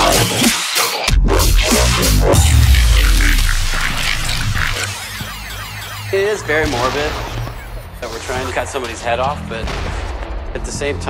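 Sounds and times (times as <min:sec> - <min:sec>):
hardcore electronic dance music: 0:00.0 - 0:09.2.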